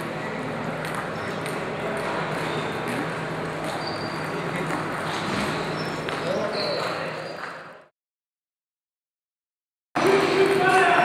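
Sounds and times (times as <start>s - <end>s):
background voices in a hall: 0.0s - 7.9s, 10.0s - 11.0s.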